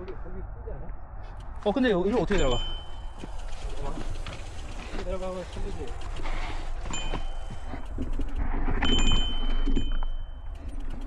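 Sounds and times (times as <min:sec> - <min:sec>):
bike clicks and scraping: 0:01.2 - 0:11.0.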